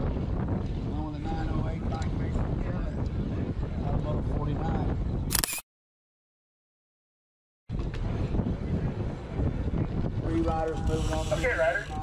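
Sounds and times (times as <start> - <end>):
wind on microphone: 0.0 - 5.6, 7.7 - 12.0.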